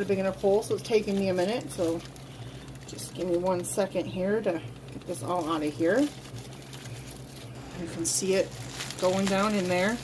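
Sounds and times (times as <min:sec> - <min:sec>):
low steady hum: 0:00.0 - 0:10.0
plastic packet rustling: 0:00.0 - 0:10.0.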